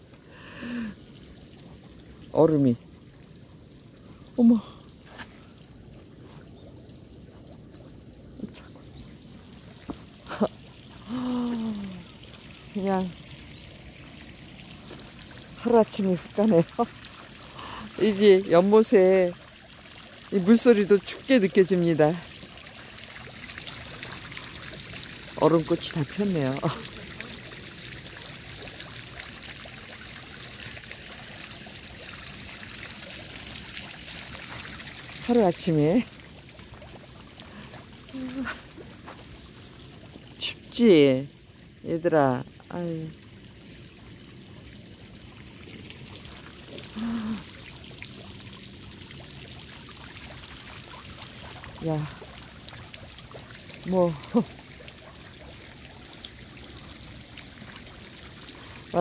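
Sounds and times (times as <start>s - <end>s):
water trickling into pond: 0.0s - 59.0s.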